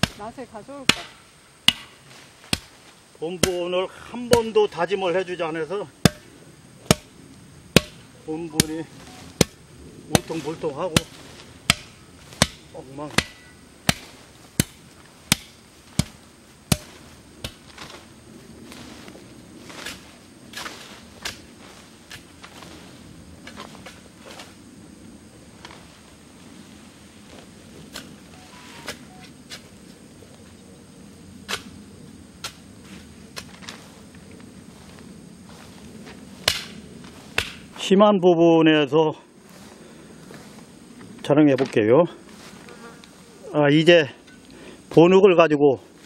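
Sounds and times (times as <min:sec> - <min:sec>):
tool beating down soil: 0:00.0 - 0:04.8, 0:06.0 - 0:07.1, 0:07.7 - 0:18.1, 0:36.4 - 0:36.7, 0:37.3 - 0:37.6.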